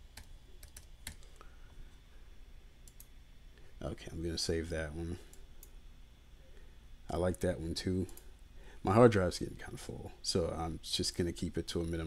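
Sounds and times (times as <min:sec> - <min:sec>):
low steady hum: 0:00.0 - 0:12.0
computer mouse clicks: 0:02.8 - 0:03.1.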